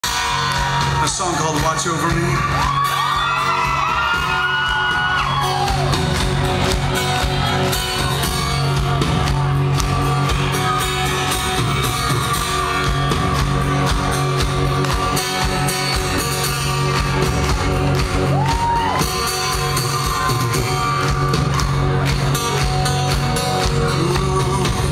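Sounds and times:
live rock band playing: 0.0s - 24.9s
audience whooping and whistling: 2.4s - 6.1s, 18.2s - 21.7s.

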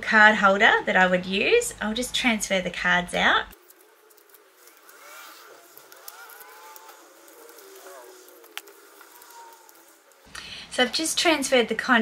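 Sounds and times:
cards squeaking out of slots: 3.6s - 10.3s.

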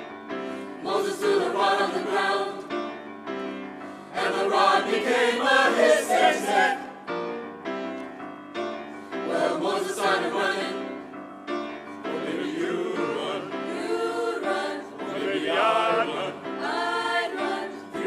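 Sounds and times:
mixed choir singing: 0.0s - 3.1s, 4.0s - 7.2s, 9.1s - 11.1s, 12.0s - 18.0s
grand piano: 0.0s - 18.0s.

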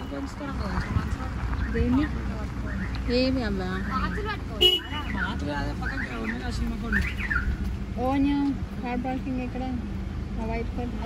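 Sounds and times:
distant people talking and calling: 0.0s - 11.0s.

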